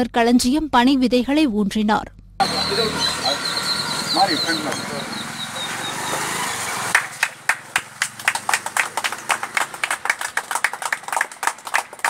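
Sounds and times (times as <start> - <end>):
people clapping: 4.2 - 12.0.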